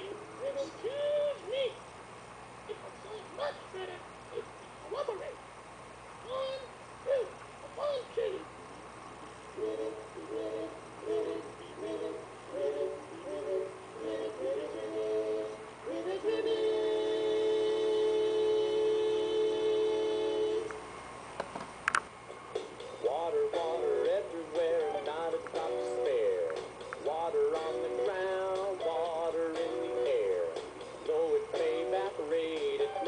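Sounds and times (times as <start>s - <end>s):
cartoon frogs singing held chord: 9.6s - 20.7s, 23.0s - 33.0s.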